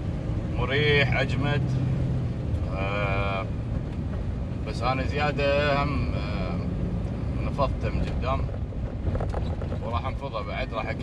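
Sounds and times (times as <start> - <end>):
car rumble inside cabin: 0.0 - 11.0.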